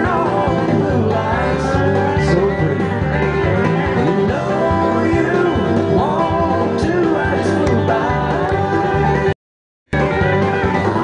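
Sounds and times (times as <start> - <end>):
bass and drum beat: 0.0 - 11.0
twangy lead guitar line: 0.0 - 11.0
upbeat country music: 0.0 - 11.0.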